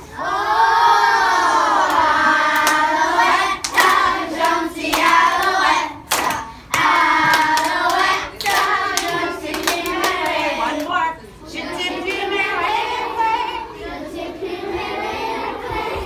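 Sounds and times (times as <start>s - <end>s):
children singing together: 0.0s - 10.7s, 11.5s - 16.0s
hand claps: 3.6s - 10.9s.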